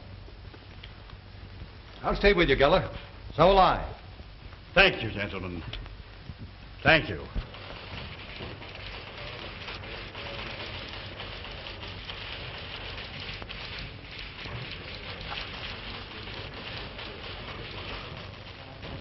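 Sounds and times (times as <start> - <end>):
small crackles and ticks: 0.0 - 2.1, 4.1 - 19.0
film soundtrack surface hiss: 0.0 - 19.0.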